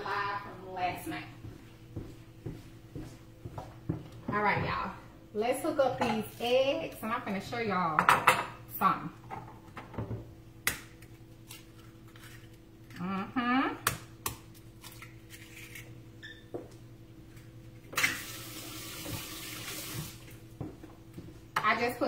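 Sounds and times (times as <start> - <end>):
faucet running into sink: 18.0 - 20.4.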